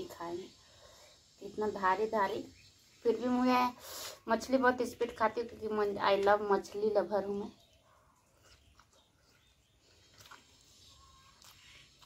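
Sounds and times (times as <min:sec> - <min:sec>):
faint chewing: 0:07.5 - 0:12.0.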